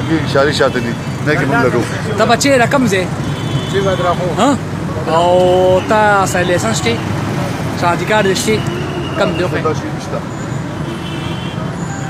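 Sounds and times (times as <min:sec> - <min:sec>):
man speaking: 0:00.0 - 0:07.1, 0:07.7 - 0:10.3
street traffic rumble: 0:00.0 - 0:12.0.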